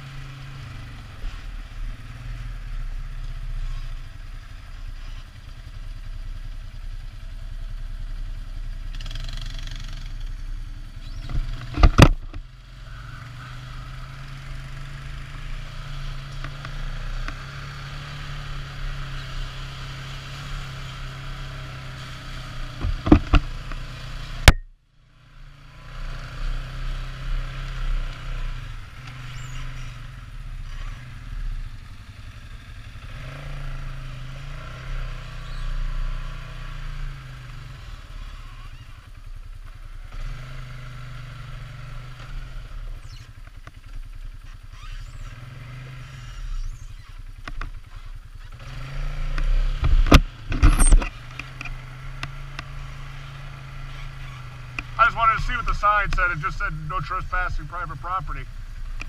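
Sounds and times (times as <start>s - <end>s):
engine running: 0.0s - 59.0s.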